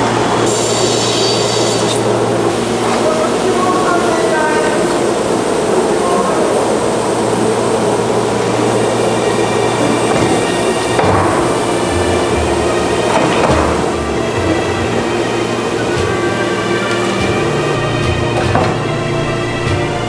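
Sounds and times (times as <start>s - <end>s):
workshop machinery hum: 0.0s - 20.0s
background music: 9.2s - 20.0s
wooden knocks: 10.0s - 11.6s, 13.1s - 13.9s, 18.3s - 19.8s.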